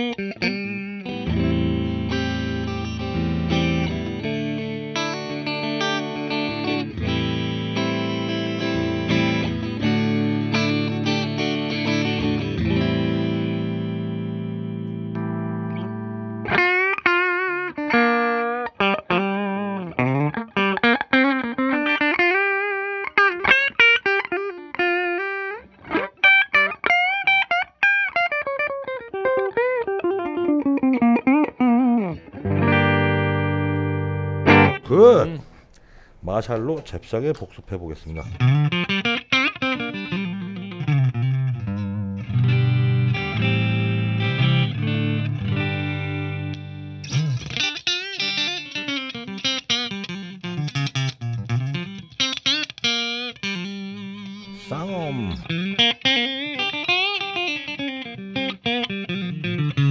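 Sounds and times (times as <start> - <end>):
clean electric guitar: 0.0 - 37.0, 38.0 - 59.9.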